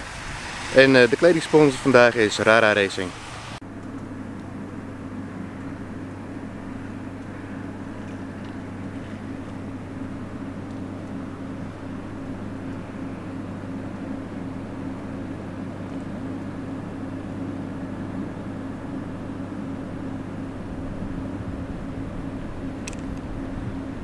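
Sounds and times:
low mechanical hum: 0.0 - 24.0.

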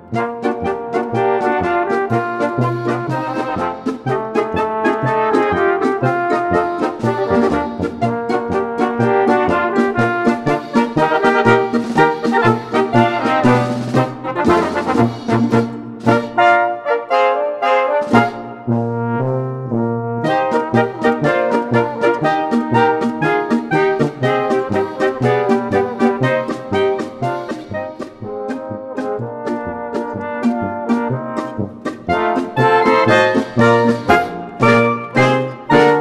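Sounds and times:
brass polka music: 0.0 - 36.0.

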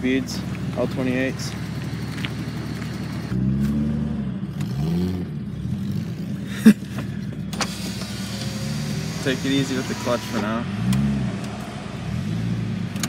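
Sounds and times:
car engine running: 0.0 - 13.0.

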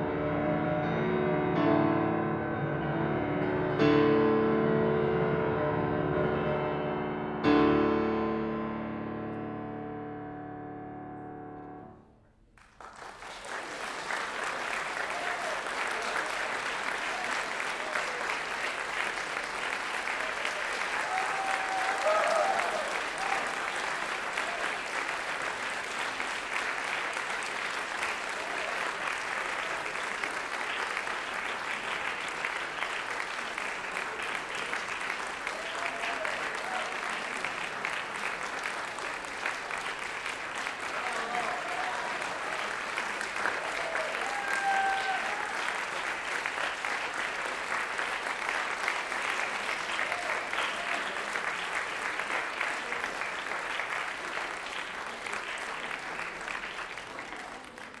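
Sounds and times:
audience applauding: 12.5 - 58.0.

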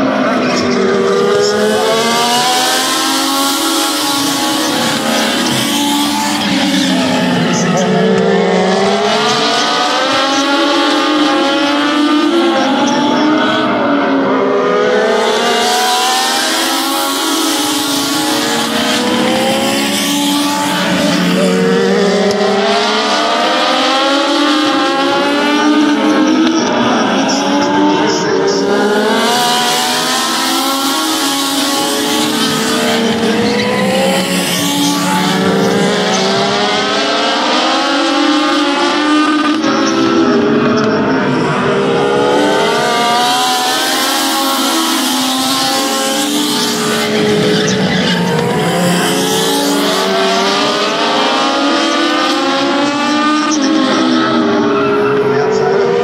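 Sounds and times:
race car engines revving: 0.0 - 56.0.

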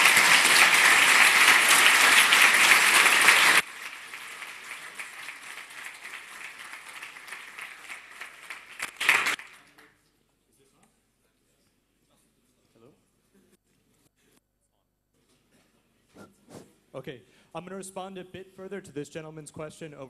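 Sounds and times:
audience applauding: 0.0 - 9.9.

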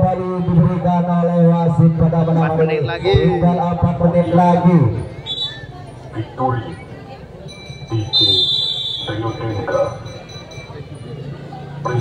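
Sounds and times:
crowd voices: 0.0 - 12.0
referee's whistle blast: 5.2 - 5.7, 8.0 - 9.3.

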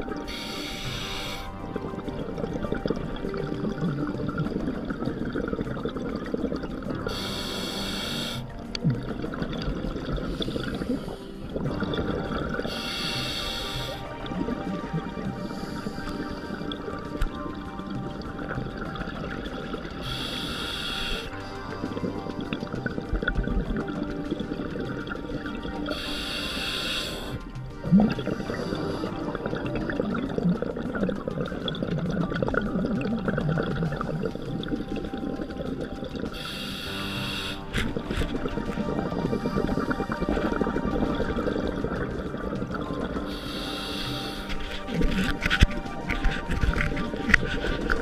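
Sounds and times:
exhaled bubbles gurgling underwater: 0.0 - 48.0
regulator hissing inhale: 0.2 - 1.6, 7.1 - 8.7, 10.3 - 11.6, 12.7 - 14.2, 15.4 - 16.8, 20.0 - 22.1, 25.9 - 27.5, 36.3 - 38.2, 43.3 - 45.0.

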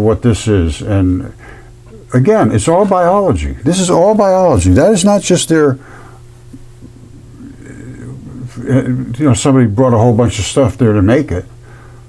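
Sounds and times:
steady low hum: 0.0 - 12.0
faint breath: 1.4 - 1.8, 5.8 - 6.3, 11.6 - 12.0.

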